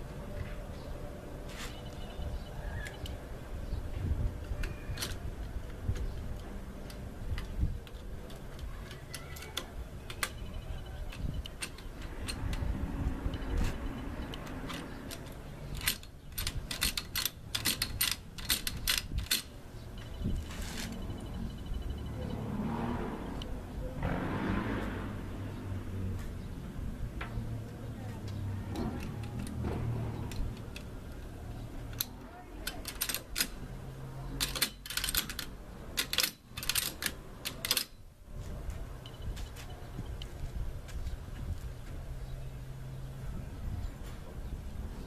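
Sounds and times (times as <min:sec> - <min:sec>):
shotgun metal clicks and clatter: 0:14.4 - 0:19.5, 0:31.9 - 0:33.6, 0:34.4 - 0:37.9.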